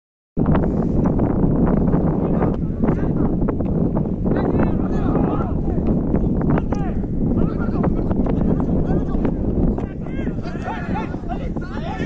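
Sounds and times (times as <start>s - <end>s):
wind buffeting microphone: 0.4s - 12.0s.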